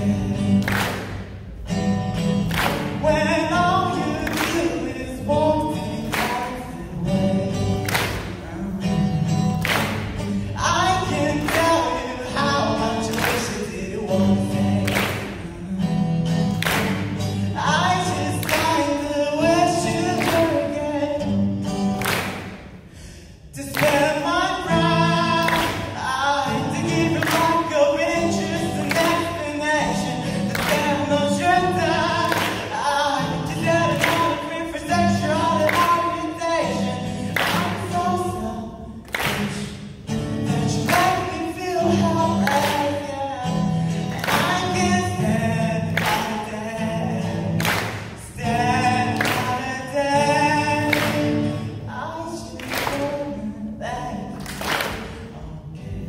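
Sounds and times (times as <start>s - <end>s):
man singing: 0.0s - 22.4s, 23.0s - 56.0s
strummed acoustic guitar: 0.0s - 56.0s.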